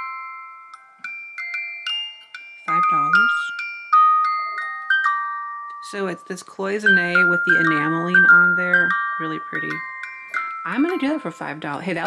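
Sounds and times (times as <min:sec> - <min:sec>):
music box notes: 0:00.0 - 0:12.0.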